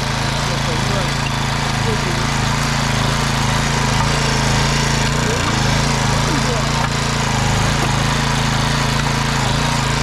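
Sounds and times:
small petrol engine under load: 0.0 - 10.0
tines churning dry soil: 0.0 - 10.0.

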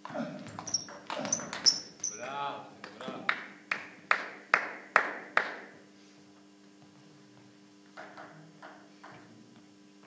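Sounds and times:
table tennis ball bouncing: 0.5 - 2.3.

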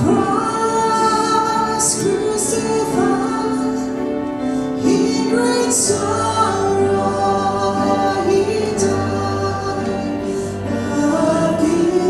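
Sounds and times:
group singing a slow hymn: 0.0 - 12.0.

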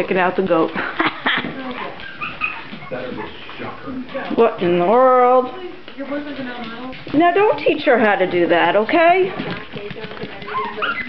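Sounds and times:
puppy whimpering: 0.7 - 4.4, 10.3 - 11.0
puppy high squeaks: 1.8 - 3.4, 10.4 - 11.0.

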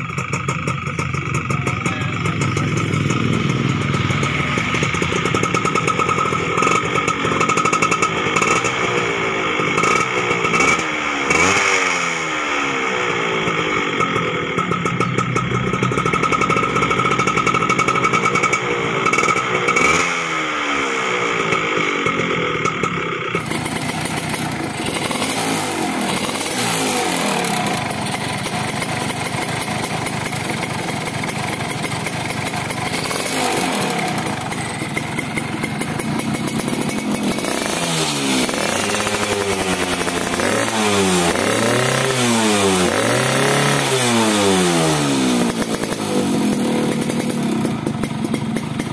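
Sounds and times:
motorcycle engine revving: 0.0 - 48.9.

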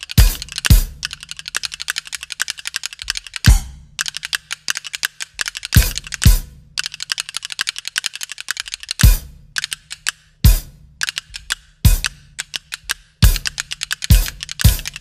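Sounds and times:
fast sharp ticks: 0.0 - 15.0
heavy drum strokes: 3.5 - 3.9.

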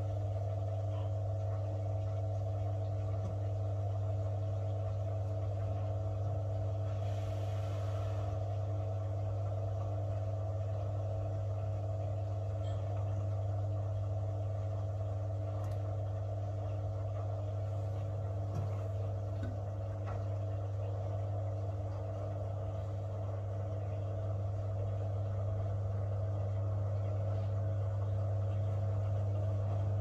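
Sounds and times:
washing machine hum: 0.0 - 30.0.

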